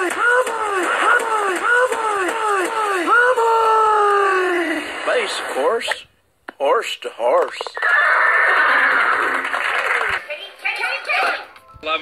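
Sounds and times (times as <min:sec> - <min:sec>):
horse whinny: 0:07.8 - 0:09.5.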